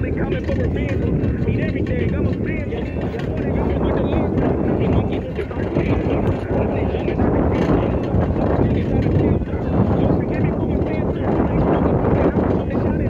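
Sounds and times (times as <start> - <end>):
road rumble: 0.0 - 13.0
wind rush over microphone: 0.0 - 13.0.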